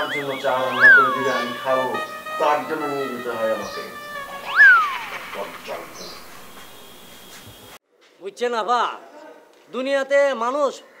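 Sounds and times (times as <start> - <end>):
soft background music: 0.0 - 7.0.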